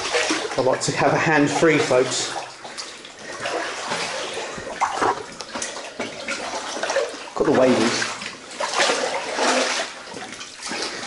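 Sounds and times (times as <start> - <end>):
sharp water splashes: 0.0 - 0.7, 1.4 - 11.0
feet wading through water: 0.0 - 11.0.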